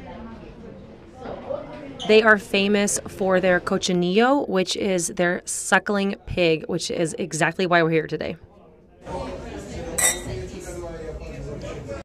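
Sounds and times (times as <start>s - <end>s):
background chatter: 0.0s - 12.0s
wine glasses clinking: 10.0s - 10.4s.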